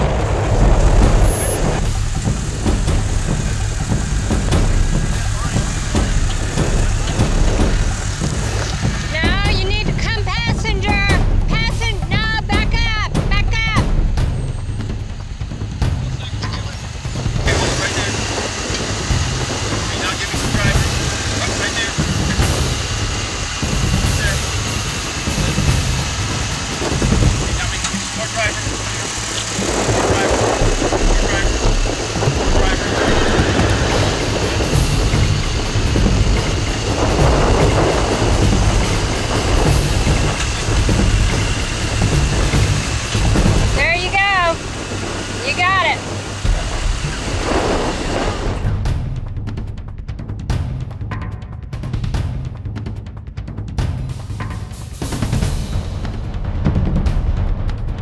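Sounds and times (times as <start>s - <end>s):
engine running at low revs: 0.0s - 58.0s.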